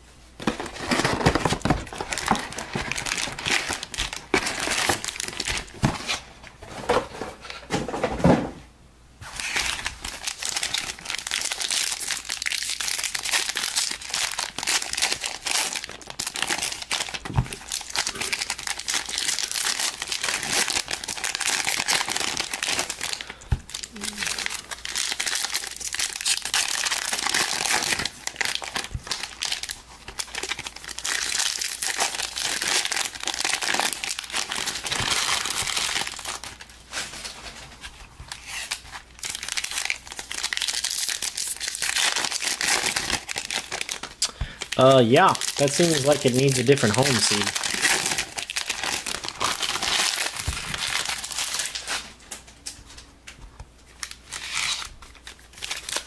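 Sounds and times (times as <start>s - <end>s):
foil wrappers crinkling: 0.4s - 7.0s, 9.2s - 53.1s, 53.8s - 56.0s
cards rustling: 24.1s - 52.6s.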